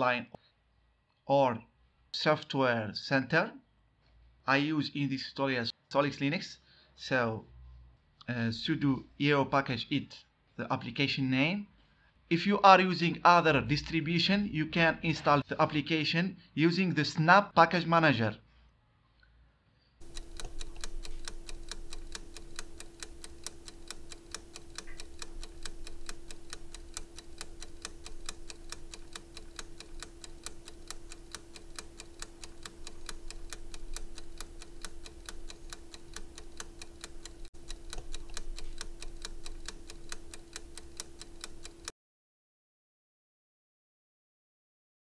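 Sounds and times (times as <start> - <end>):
rapid even ticking: 20.0 - 41.9
steady low hum: 20.0 - 41.9.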